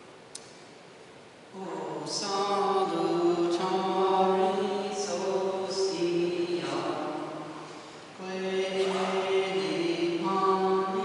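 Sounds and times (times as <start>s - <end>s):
voices singing a slow chant: 1.5s - 11.0s.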